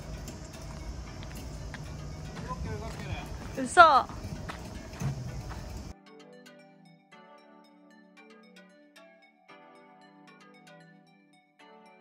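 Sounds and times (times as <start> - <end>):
low uneven rumble: 0.0 - 5.9
music: 0.0 - 12.0.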